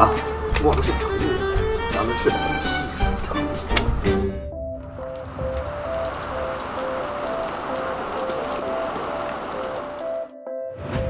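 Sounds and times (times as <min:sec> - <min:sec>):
soft background music: 0:00.0 - 0:11.0
heavy rain falling: 0:04.8 - 0:10.3.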